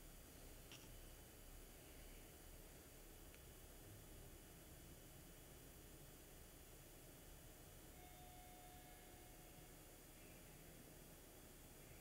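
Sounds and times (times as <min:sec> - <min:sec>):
faint hiss: 0:00.0 - 0:12.0
faint thin steady tone: 0:00.0 - 0:12.0.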